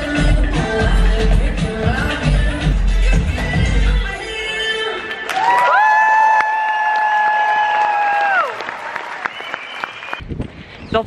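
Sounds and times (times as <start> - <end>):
audience clapping and cheering: 4.9 - 10.2.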